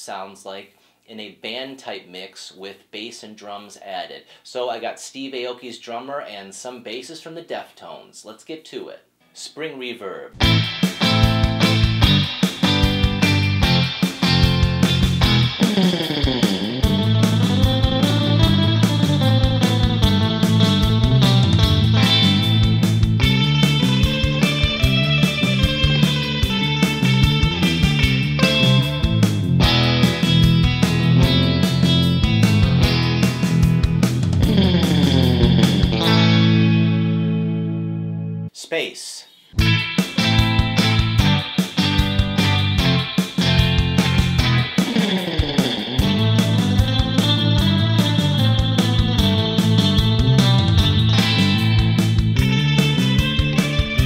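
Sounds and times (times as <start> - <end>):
backing drums: 10.4 - 36.7, 39.5 - 54.0
surf rock electric guitar: 10.4 - 38.4, 39.6 - 54.0
bass: 10.4 - 38.5, 39.6 - 54.0.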